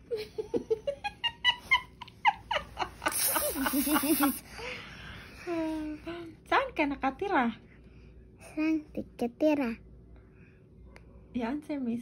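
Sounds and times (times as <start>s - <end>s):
girl giggling: 0.1s - 4.5s.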